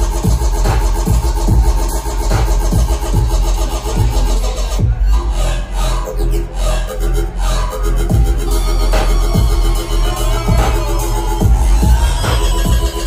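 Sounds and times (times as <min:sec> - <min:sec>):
steady kick drum: 0:00.0 - 0:05.3, 0:08.1 - 0:13.0
electronic bass music: 0:00.0 - 0:13.0.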